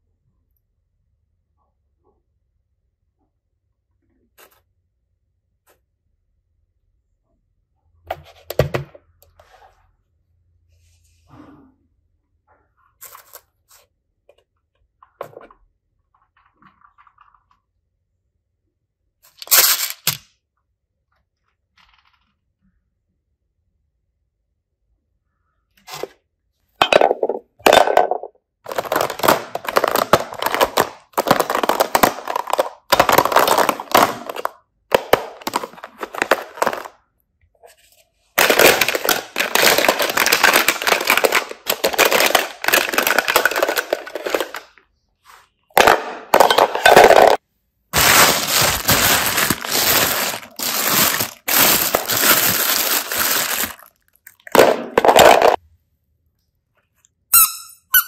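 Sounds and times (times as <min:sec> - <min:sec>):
plastic toys clattering: 0:19.3 - 0:20.3, 0:26.8 - 0:37.0, 0:38.2 - 0:44.8, 0:45.8 - 0:47.4, 0:48.0 - 0:55.6.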